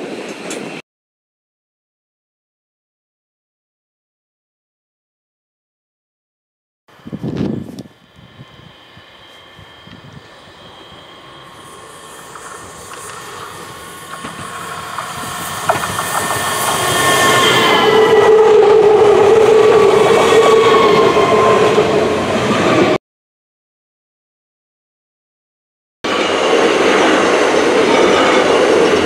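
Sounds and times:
electric train passing at speed: 0.0 - 0.8, 6.9 - 23.0, 26.1 - 29.0.

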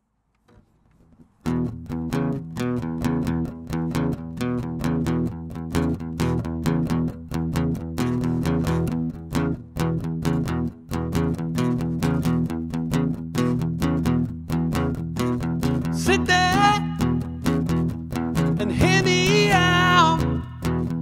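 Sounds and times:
acoustic guitar strumming: 1.4 - 21.0.

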